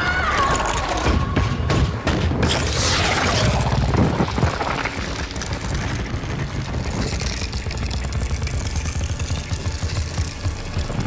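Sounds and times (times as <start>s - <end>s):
heavy continuous rumble: 0.0s - 11.0s
ice crackling and hissing: 2.5s - 11.0s.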